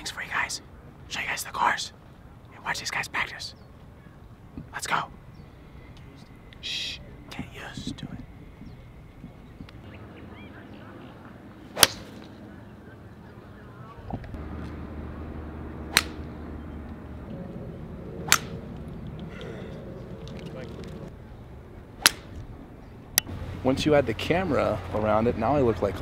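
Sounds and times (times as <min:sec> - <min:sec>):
low outdoor background: 0:00.0 - 0:26.0
steady low hum: 0:00.0 - 0:26.0
golf club striking ball: 0:11.8 - 0:12.3, 0:15.9 - 0:16.3, 0:18.2 - 0:18.6, 0:22.0 - 0:22.4.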